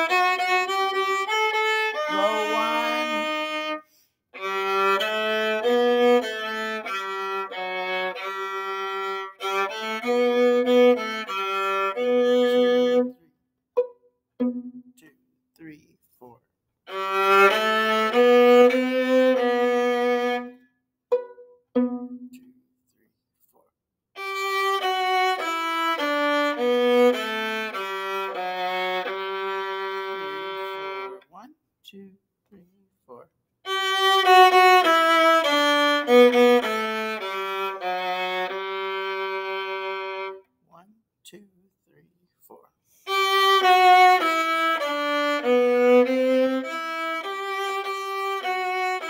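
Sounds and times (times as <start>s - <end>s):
bowed viola melody: 0.0s - 15.1s, 16.9s - 22.5s, 24.2s - 31.4s, 33.6s - 40.5s, 43.0s - 49.0s.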